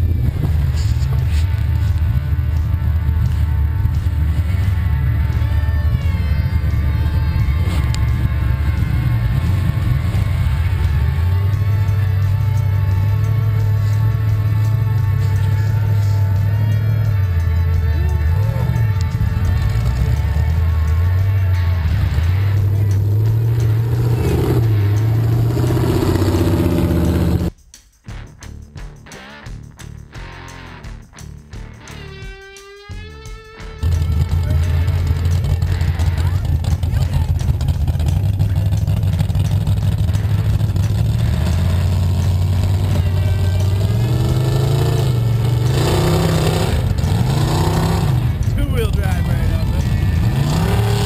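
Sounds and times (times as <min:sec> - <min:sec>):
truck engine under load: 0:00.0 - 0:27.5, 0:33.8 - 0:51.0
music playing: 0:00.0 - 0:51.0.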